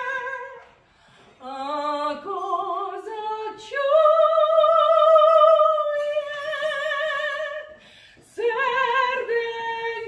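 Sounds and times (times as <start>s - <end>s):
woman singing operatically: 0.0s - 0.6s, 1.4s - 10.0s.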